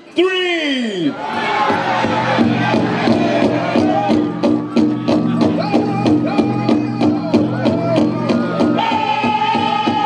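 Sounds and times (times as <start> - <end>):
big drum steady beat: 1.7 - 10.0
men singing high notes: 1.9 - 10.0.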